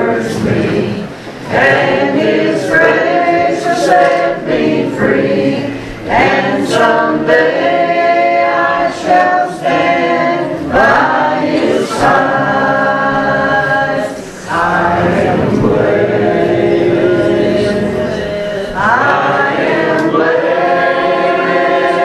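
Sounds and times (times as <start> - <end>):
group singing church song: 0.0 - 22.0.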